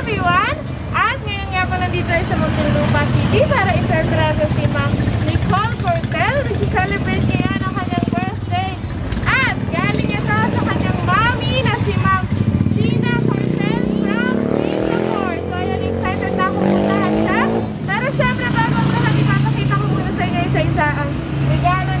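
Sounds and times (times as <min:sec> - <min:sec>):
vehicle engine running: 0:00.0 - 0:22.0.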